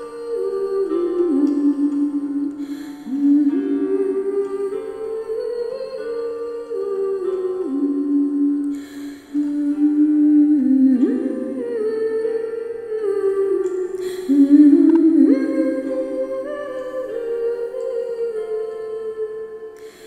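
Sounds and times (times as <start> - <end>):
person humming slow melody: 0.0 - 20.0.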